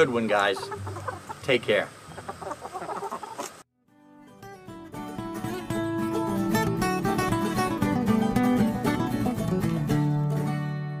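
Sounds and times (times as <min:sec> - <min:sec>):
hens clucking: 0:00.0 - 0:03.6.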